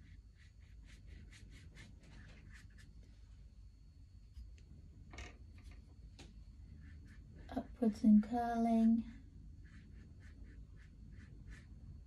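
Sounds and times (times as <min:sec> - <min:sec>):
paintbrush strokes on paper: 0:00.0 - 0:03.2, 0:06.5 - 0:12.0.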